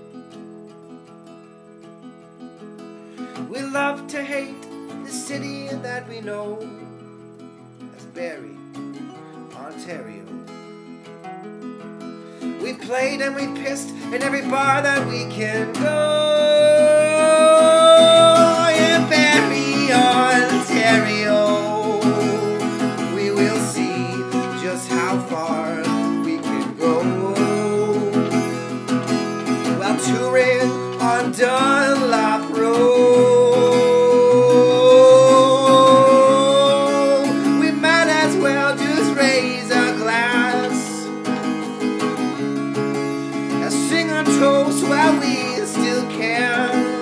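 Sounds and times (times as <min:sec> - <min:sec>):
acoustic guitar strumming: 0:00.0 - 0:47.0
man singing: 0:03.3 - 0:06.8, 0:08.0 - 0:08.6, 0:09.5 - 0:10.5, 0:12.5 - 0:41.3, 0:43.3 - 0:47.0.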